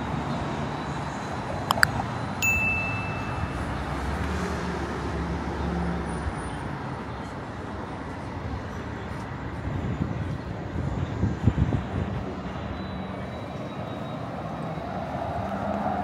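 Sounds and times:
city street traffic: 0:00.0 - 0:16.0
passing vehicle rumble: 0:00.1 - 0:08.8
short high chime: 0:02.4 - 0:04.4.

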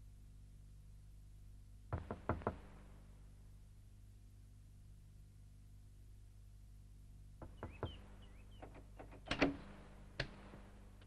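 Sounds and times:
door handle and latch clicking: 0:08.6 - 0:10.3.

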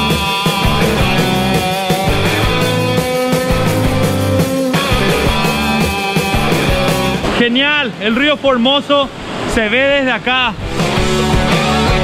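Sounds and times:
background music: 0:00.0 - 0:08.5, 0:10.5 - 0:12.0.

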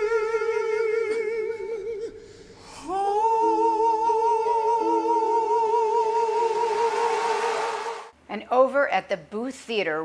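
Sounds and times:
male voices singing held note: 0:00.0 - 0:08.1
sustained accompanying notes: 0:02.1 - 0:08.1.

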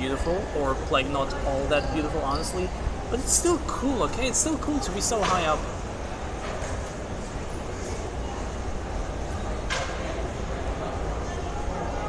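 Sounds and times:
low rumble and hiss of hall: 0:00.0 - 0:12.0.

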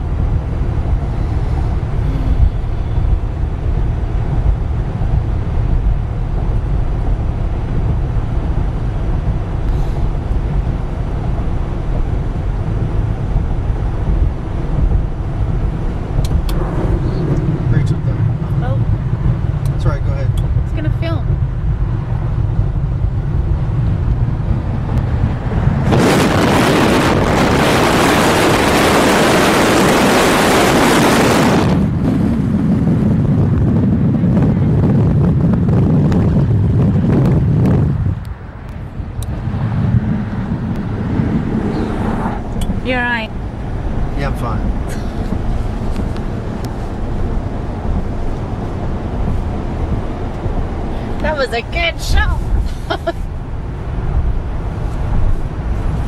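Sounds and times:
car road rumble inside cabin: 0:00.0 - 0:56.0
wind rushing on microphone: 0:00.0 - 0:56.0.

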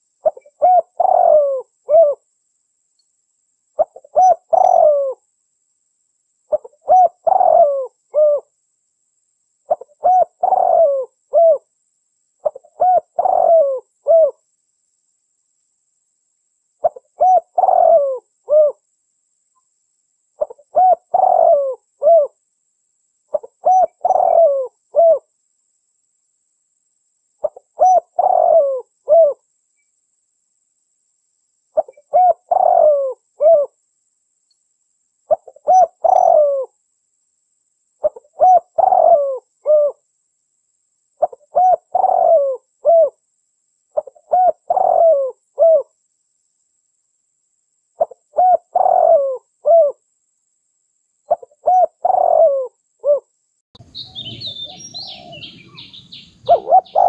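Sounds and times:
dove cooing: 0:00.0 - 0:02.2, 0:03.8 - 0:05.2, 0:06.5 - 0:08.5, 0:09.7 - 0:11.7, 0:12.4 - 0:14.4, 0:16.8 - 0:18.8, 0:20.4 - 0:22.4, 0:23.3 - 0:25.3, 0:27.4 - 0:29.4, 0:31.8 - 0:33.8, 0:35.3 - 0:36.7, 0:38.0 - 0:40.0, 0:41.2 - 0:43.2, 0:44.0 - 0:45.9, 0:48.0 - 0:50.0, 0:51.3 - 0:53.3, 0:54.0 - 0:57.0.

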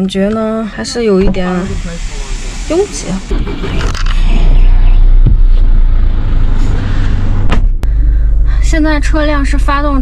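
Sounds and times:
diesel engine idling: 0:00.0 - 0:10.0.

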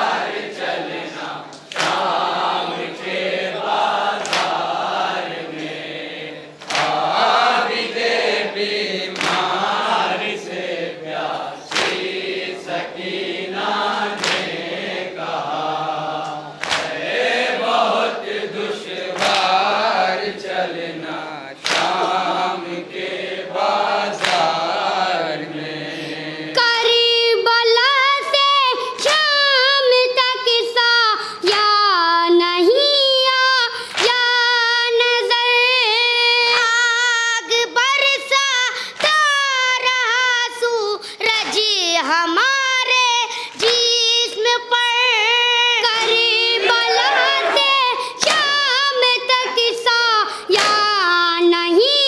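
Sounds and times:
group chanting in unison: 0:00.0 - 0:27.2, 0:45.8 - 0:51.5
chest-beating slaps: 0:01.5 - 0:02.2, 0:04.2 - 0:04.7, 0:06.6 - 0:07.1, 0:09.1 - 0:09.6, 0:11.7 - 0:12.1, 0:14.2 - 0:14.6, 0:16.2 - 0:17.0, 0:19.2 - 0:19.7, 0:21.6 - 0:22.4, 0:24.2 - 0:24.6, 0:48.2 - 0:48.6, 0:50.6 - 0:50.9
boy singing into microphone: 0:23.8 - 0:52.0.

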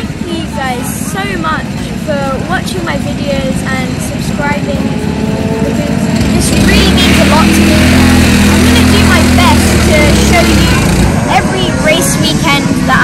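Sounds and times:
engine running at low speed: 0:00.0 - 0:13.0.

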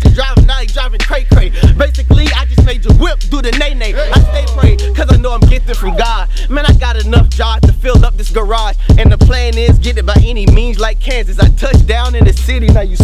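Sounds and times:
hip-hop beat: 0:00.0 - 0:13.0
man rapping: 0:00.0 - 0:13.0.

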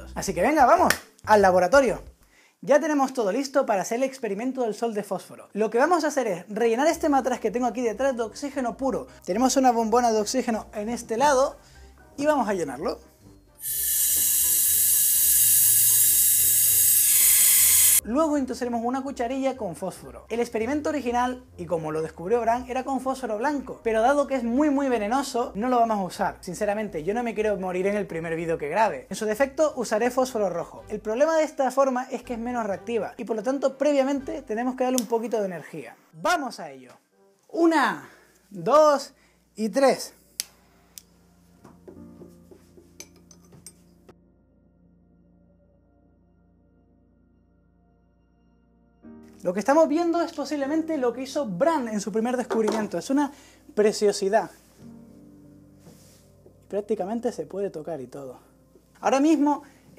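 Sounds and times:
gas hissing from cylinder: 0:13.6 - 0:18.0
metal spoon clinking on glass: 0:43.0 - 0:43.8.

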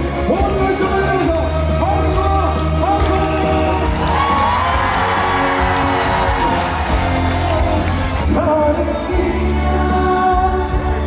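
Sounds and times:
loud amplified backing music: 0:00.0 - 0:11.0
man singing into a microphone: 0:07.3 - 0:11.0.

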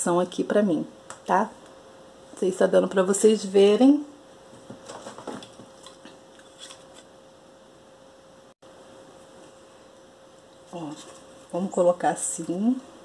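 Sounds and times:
faint steady hum: 0:00.0 - 0:13.0
ribbon rustling and scraping: 0:04.8 - 0:07.1.

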